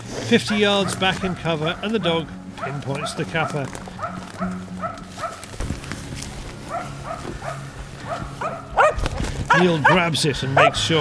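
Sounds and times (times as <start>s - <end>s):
dog barking: 0.4s - 2.0s, 2.6s - 5.5s, 6.7s - 10.9s.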